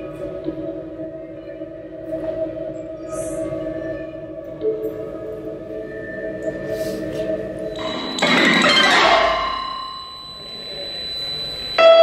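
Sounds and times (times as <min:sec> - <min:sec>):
modular synthesizer tones: 0:00.0 - 0:12.0
thin high tone: 0:07.6 - 0:12.0.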